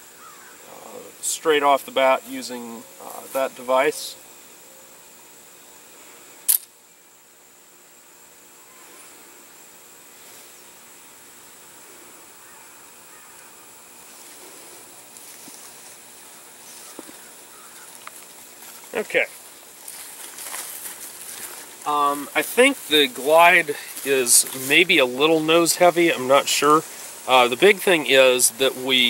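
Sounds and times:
thin high hiss: 0.0s - 29.0s
launcher trigger snap: 6.5s - 6.7s.

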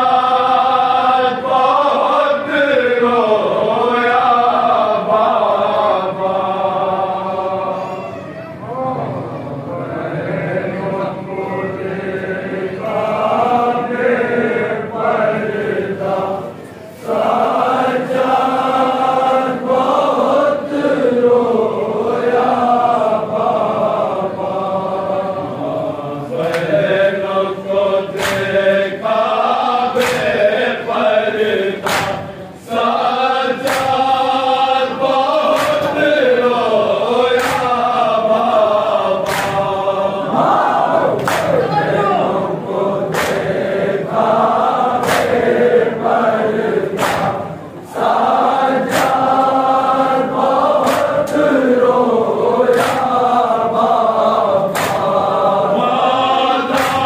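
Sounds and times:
men chanting in unison: 0.0s - 7.8s, 8.7s - 57.0s
hands slapping bare chests: 28.2s - 28.5s, 31.8s - 32.3s, 39.2s - 39.7s, 45.0s - 45.4s, 47.0s - 47.4s, 50.8s - 51.2s, 54.7s - 55.1s, 56.7s - 57.0s.

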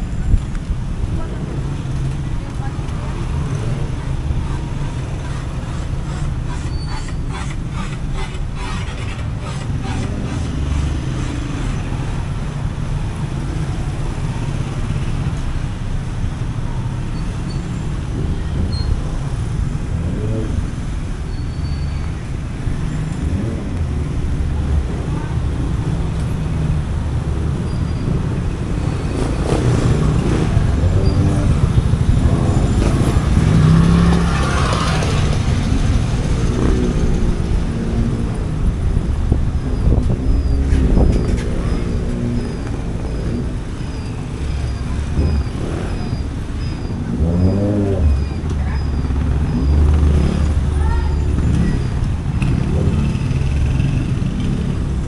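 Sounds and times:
road traffic rumbling: 0.0s - 55.0s.

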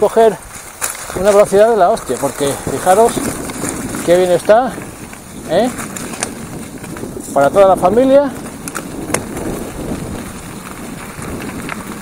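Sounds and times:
bicycle tyres rolling: 0.0s - 12.0s
wind on microphone: 0.0s - 12.0s.

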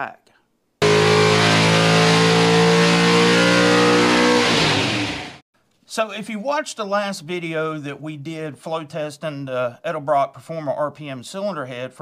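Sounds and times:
engine at high revs: 0.8s - 5.4s.

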